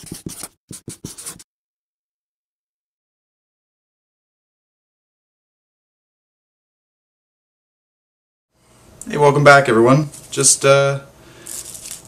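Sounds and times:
marker pen scratching on paper: 0.0 - 1.5.

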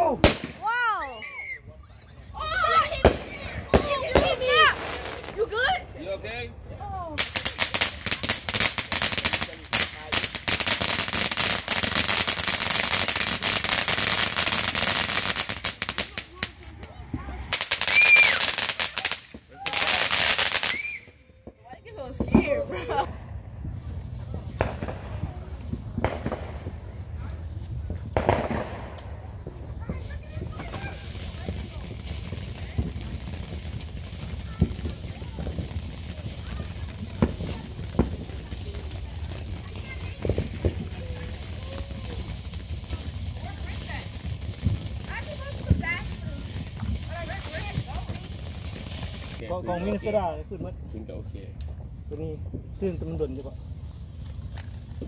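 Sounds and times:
fountain firework hissing: 0.0 - 21.1, 22.0 - 50.4
firework bangs: 0.0 - 50.3
fireworks crackling: 0.0 - 55.0.

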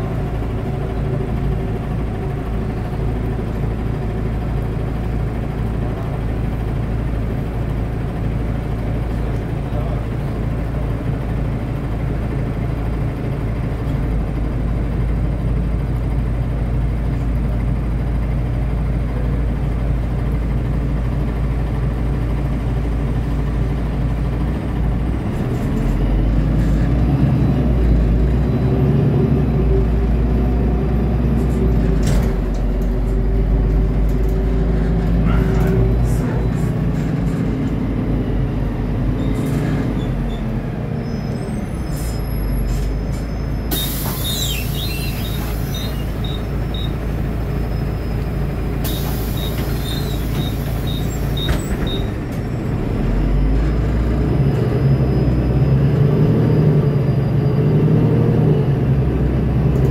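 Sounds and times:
bus drivetrain hum: 0.0 - 59.9
road noise: 0.0 - 59.9.

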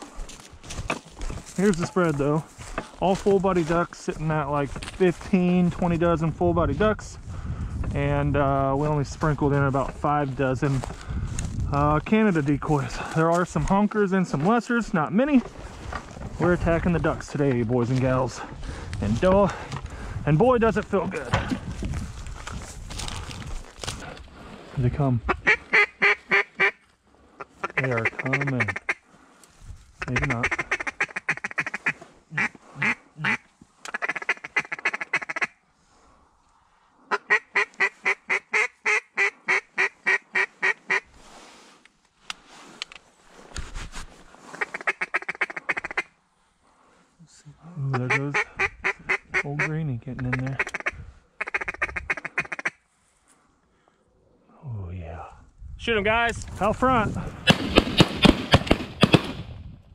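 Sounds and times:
duck call quacks: 25.3 - 26.8, 27.4 - 29.0, 30.0 - 35.6, 37.1 - 41.1, 44.5 - 46.1, 47.9 - 49.7, 50.3 - 52.8.

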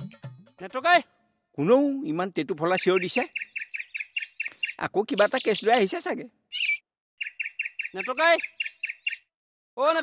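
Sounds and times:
man's voice: 0.6 - 3.3, 9.8 - 10.0
small bird chirping rapidly: 2.6 - 9.4.

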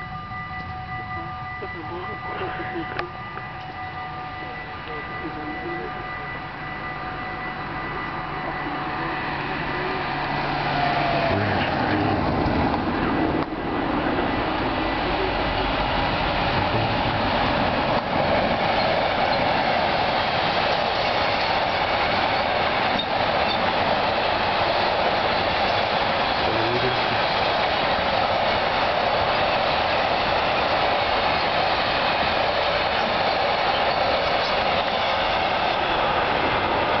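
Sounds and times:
level crossing warning tones: 0.0 - 12.3
freight train rolling on rails: 0.0 - 37.0.

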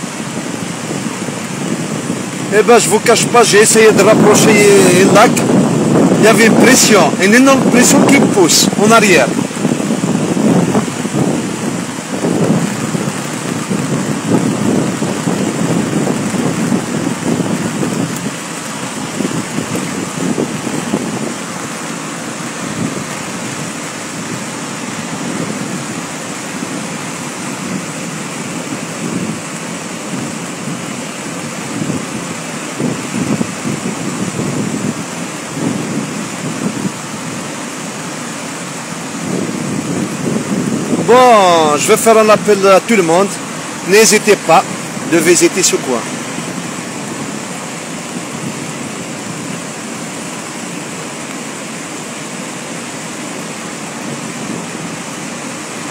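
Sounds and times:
waterfall rushing: 0.0 - 55.9.

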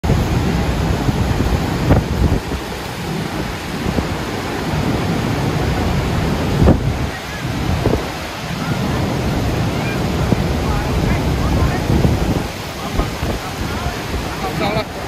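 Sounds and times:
churning river: 0.0 - 15.0
waterfall roaring onto rocks: 0.0 - 15.0
wind buffeting microphone: 0.0 - 15.0.

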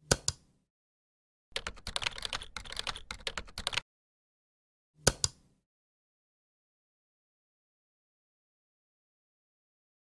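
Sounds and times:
computer keyboard typing: 1.5 - 3.8.

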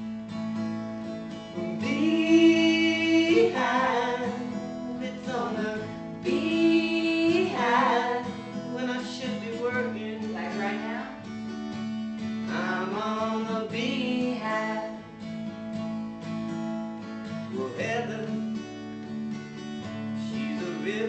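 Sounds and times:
acoustic guitars strumming: 0.0 - 21.0
man and woman singing: 1.6 - 11.2, 12.5 - 15.0, 17.5 - 18.4, 20.2 - 21.0.

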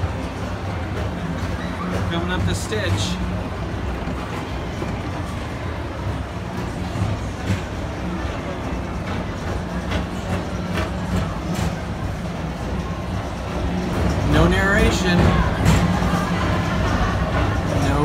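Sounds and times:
people mover car humming: 0.0 - 18.0.

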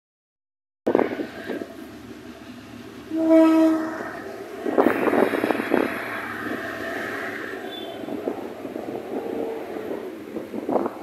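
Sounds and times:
locomotive rolling rumble: 0.9 - 11.0.

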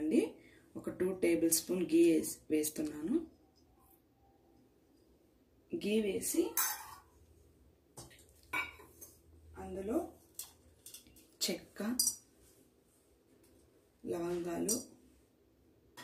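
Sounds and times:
steel utensils clinking: 10.3 - 12.3, 14.6 - 14.9.

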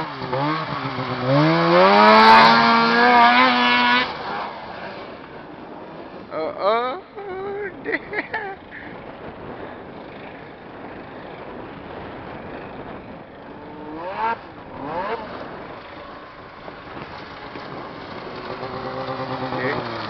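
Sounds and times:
snowmobile engine revving: 0.0 - 6.2, 13.6 - 20.0.

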